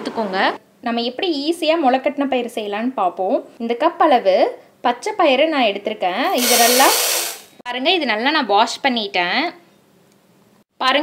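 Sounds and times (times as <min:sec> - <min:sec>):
woman speaking: 0:00.0 - 0:07.0, 0:07.7 - 0:09.6.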